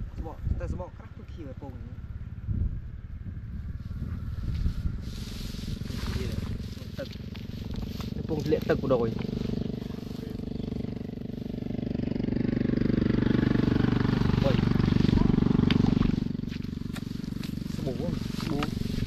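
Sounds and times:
motor vehicle passing by: 0.0s - 19.0s.

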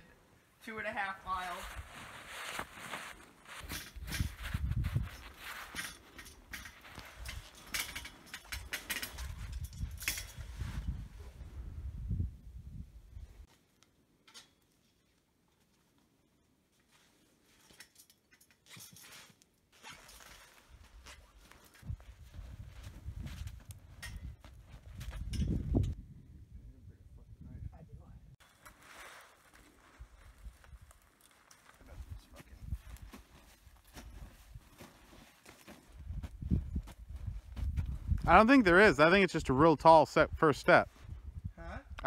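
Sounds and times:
boots crunching in snow: 1.5s - 3.7s.

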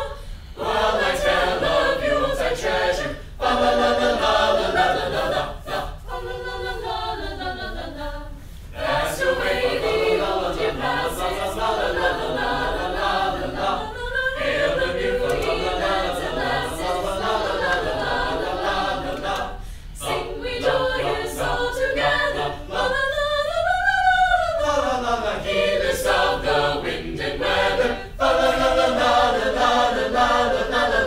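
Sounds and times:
choir singing a cappella: 0.0s - 31.0s.

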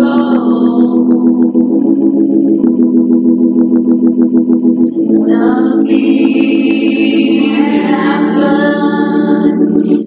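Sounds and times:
electric organ chords: 0.0s - 10.0s
quick ticking beat: 0.0s - 10.0s.

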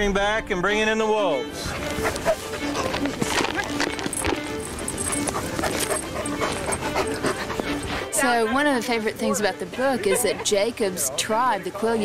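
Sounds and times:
music with long held notes: 0.3s - 9.9s
wolves howling: 1.6s - 10.7s.

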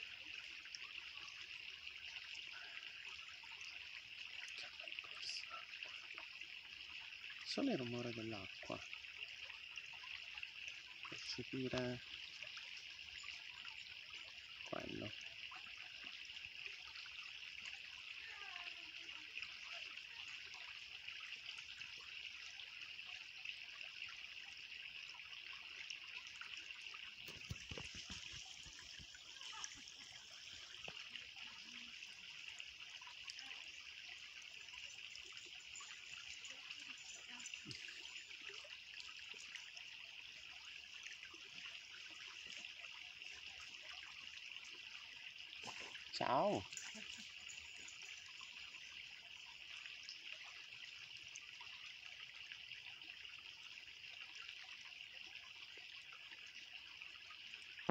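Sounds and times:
stream trickling over stones: 0.0s - 57.9s.

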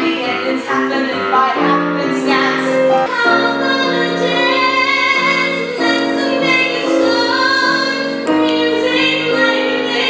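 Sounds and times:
piano accompaniment: 0.0s - 10.0s
woman singing: 0.0s - 10.0s.

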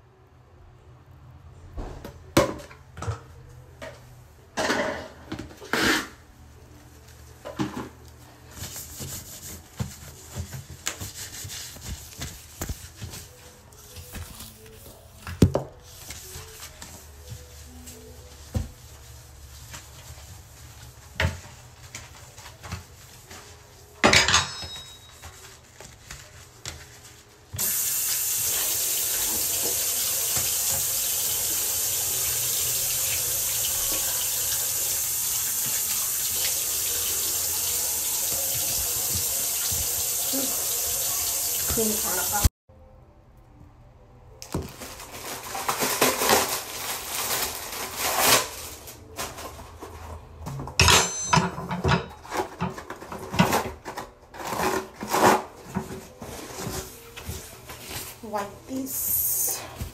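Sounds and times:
hand scrubbing wet basin: 8.5s - 15.0s.

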